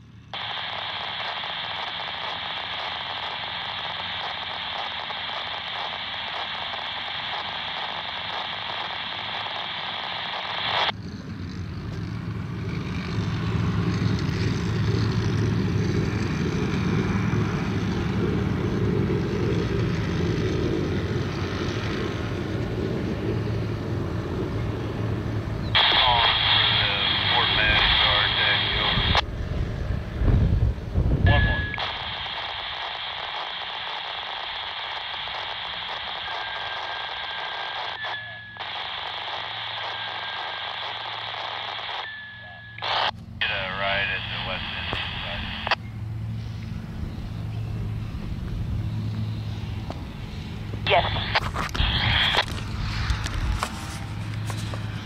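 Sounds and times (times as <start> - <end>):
steady radio hiss: 0.3 - 11.0, 25.7 - 29.2, 30.9 - 55.0
radio voice with static: 0.4 - 11.0, 25.7 - 29.2, 31.1 - 45.8, 50.7 - 55.0
low rumble: 10.9 - 33.2
short beeps: 31.3 - 31.8, 38.0 - 38.6, 42.0 - 42.8.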